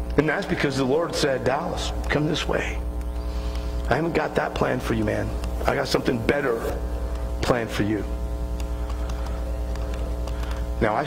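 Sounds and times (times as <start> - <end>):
low electrical hum with buzz: 0.0 - 11.0.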